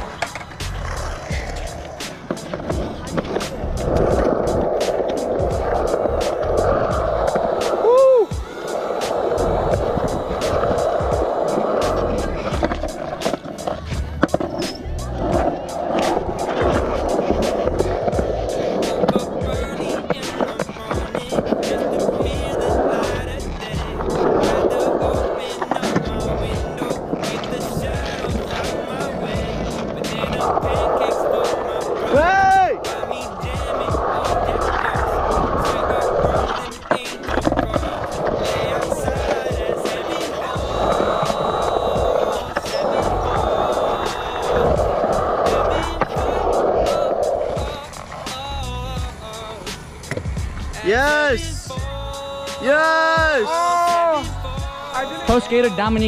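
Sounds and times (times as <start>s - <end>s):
skateboard wheels rolling on concrete: 0.0s - 56.0s.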